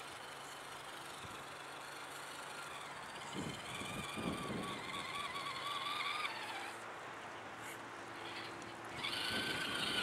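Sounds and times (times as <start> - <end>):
rc car motor whining: 0.0 - 6.9, 7.6 - 10.0.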